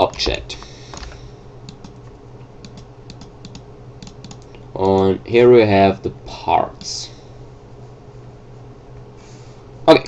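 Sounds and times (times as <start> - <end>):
steady low hum: 0.0 - 10.0
computer keyboard keys clicking: 1.7 - 2.0, 2.6 - 5.1.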